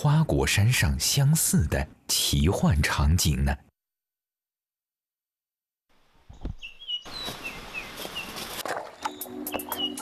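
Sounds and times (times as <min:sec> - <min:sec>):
small birds chirping: 0:06.3 - 0:10.0.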